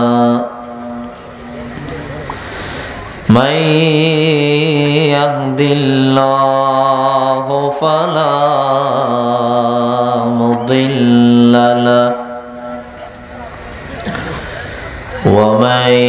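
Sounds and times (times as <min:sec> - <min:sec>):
man chanting through a microphone: 0:00.0 - 0:02.3, 0:03.3 - 0:13.6, 0:14.9 - 0:16.0.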